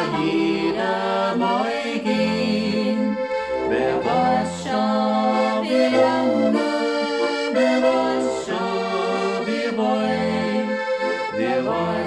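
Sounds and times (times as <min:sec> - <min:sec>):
button accordion playing folk tune: 0:00.0 - 0:12.0.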